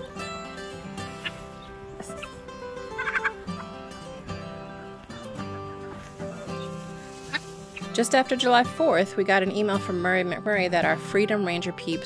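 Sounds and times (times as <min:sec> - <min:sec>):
guitar music: 0:00.0 - 0:12.0
poultry calls: 0:01.1 - 0:03.9, 0:06.1 - 0:07.9.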